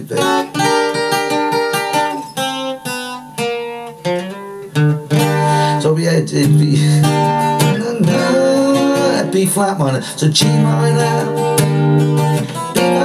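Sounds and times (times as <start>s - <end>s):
acoustic guitar strumming chords: 0.0s - 13.0s.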